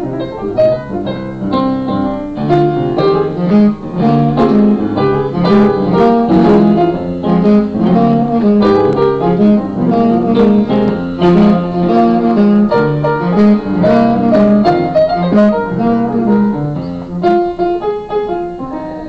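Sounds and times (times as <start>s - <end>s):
jazz piano playing: 0.0s - 19.0s.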